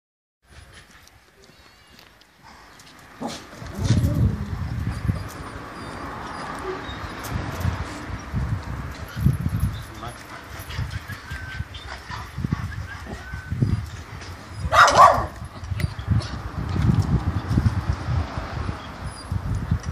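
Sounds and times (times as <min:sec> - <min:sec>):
footsteps on concrete: 0:00.6 - 0:04.4
dog barking: 0:14.7 - 0:15.4.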